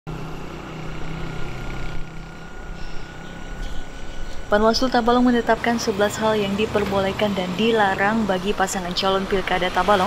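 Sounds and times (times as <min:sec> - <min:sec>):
motor vehicle engine rumble: 0:00.1 - 0:10.0.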